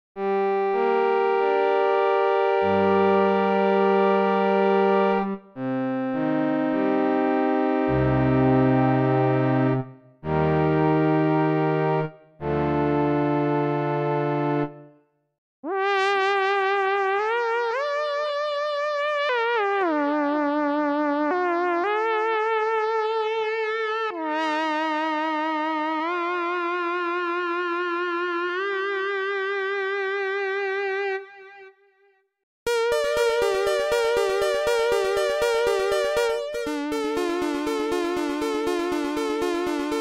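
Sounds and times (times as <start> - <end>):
synthesizer held chord: 0.2 - 14.9, 32.7 - 40.0
synth lead melody with vibrato: 0.2 - 15.0, 32.7 - 40.0.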